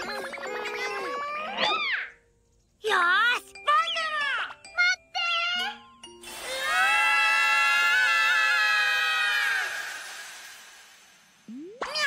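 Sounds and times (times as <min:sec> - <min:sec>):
cartoon character screaming: 0:06.4 - 0:09.9.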